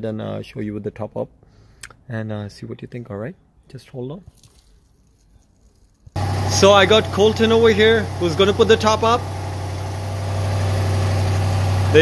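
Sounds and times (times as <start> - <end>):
convertible roof motor humming: 6.2 - 12.0.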